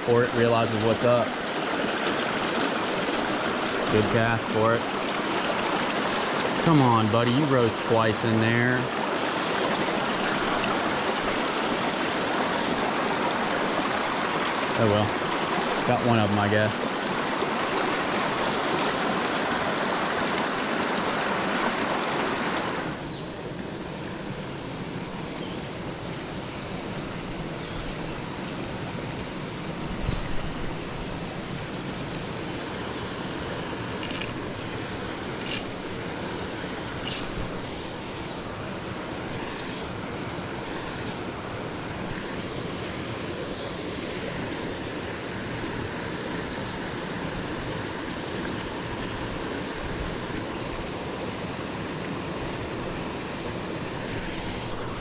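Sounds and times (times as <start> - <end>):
stream running over stones: 0.0 - 55.0.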